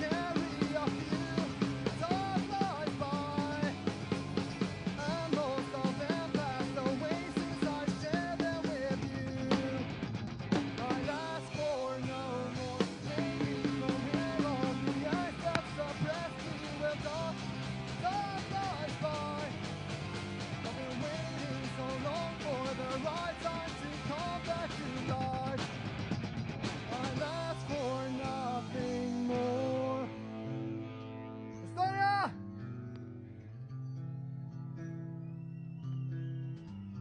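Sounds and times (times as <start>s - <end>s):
person singing: 0.0s - 3.9s, 4.8s - 9.9s, 10.7s - 19.6s, 20.6s - 25.6s, 26.9s - 30.6s
drum kit: 0.0s - 30.1s
punk rock band playing: 0.0s - 32.3s
electric guitars: 0.0s - 35.4s.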